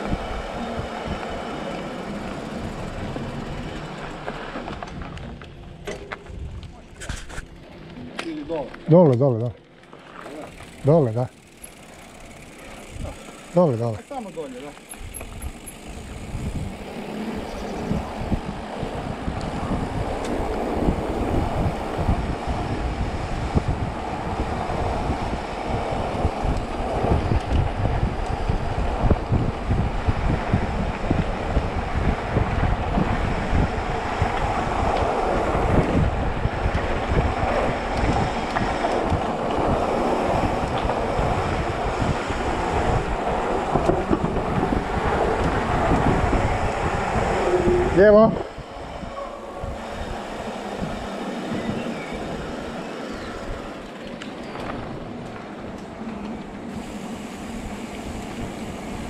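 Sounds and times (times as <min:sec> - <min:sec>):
wind rushing over microphone: 0:00.0 - 0:05.5, 0:15.0 - 0:59.0
bike rattling over rough concrete: 0:00.0 - 0:59.0.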